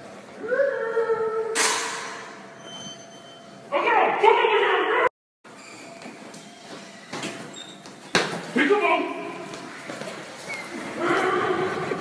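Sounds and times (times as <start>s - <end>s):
quiet footsteps: 9.3s - 11.4s.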